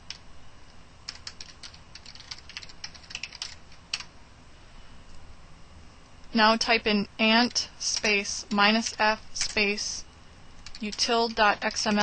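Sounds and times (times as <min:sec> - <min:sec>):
computer keyboard typing: 0:01.1 - 0:04.1, 0:07.5 - 0:09.7, 0:10.6 - 0:12.0.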